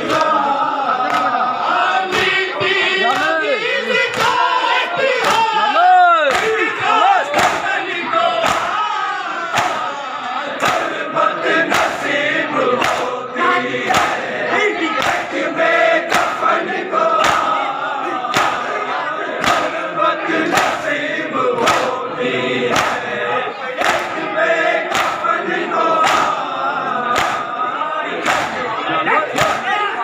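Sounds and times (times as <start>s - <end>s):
crowd of men chanting: 0.0s - 30.0s
chest-beating slaps: 4.1s - 4.5s, 6.3s - 6.7s, 7.3s - 7.7s, 8.4s - 8.8s, 9.5s - 9.9s, 10.6s - 11.0s, 11.6s - 12.2s, 12.8s - 13.1s, 13.9s - 14.2s, 16.1s - 16.4s, 17.2s - 17.6s, 18.3s - 18.7s, 19.4s - 19.8s, 20.5s - 20.8s, 21.6s - 22.0s, 22.7s - 23.1s, 23.8s - 24.2s, 24.8s - 25.2s, 26.0s - 26.4s, 27.1s - 27.5s, 28.2s - 28.6s, 29.3s - 29.7s.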